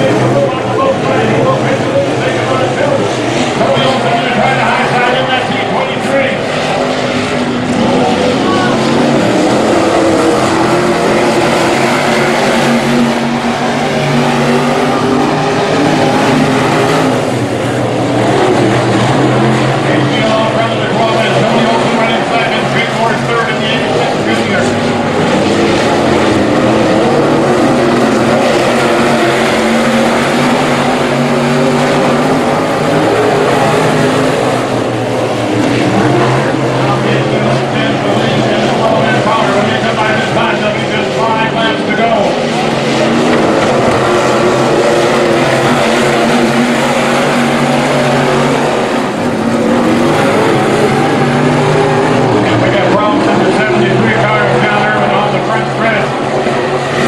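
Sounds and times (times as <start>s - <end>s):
race car engines roaring: 0.0s - 57.0s.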